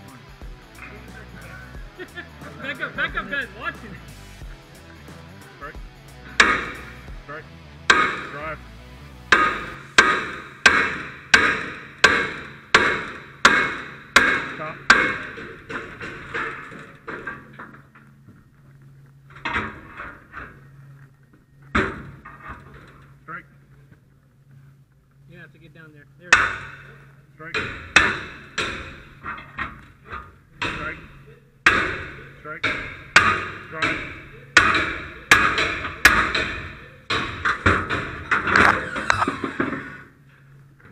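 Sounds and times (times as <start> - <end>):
door banging and rattling: 9.3 - 18.0, 19.3 - 20.6, 21.7 - 23.1, 26.4 - 40.0
metal clatter: 9.3 - 18.3, 19.2 - 21.0, 26.4 - 40.1
metal bar strikes ringing: 26.3 - 39.8.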